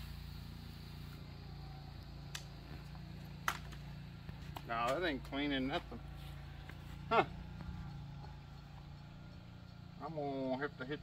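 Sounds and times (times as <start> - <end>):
pressure washer engine hum: 0.0 - 11.0.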